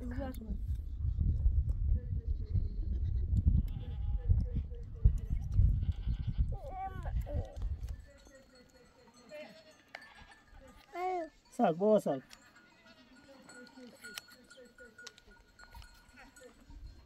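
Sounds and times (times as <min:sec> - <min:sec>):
wind rumble on microphone: 0:00.0 - 0:08.2
livestock bleating: 0:02.8 - 0:04.5, 0:05.1 - 0:07.0, 0:09.3 - 0:10.9, 0:12.4 - 0:13.9.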